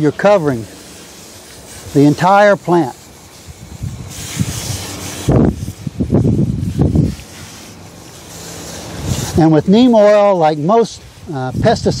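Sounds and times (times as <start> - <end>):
garden sprayer hissing: 0.0 - 12.0
leaves rustling: 0.0 - 12.0.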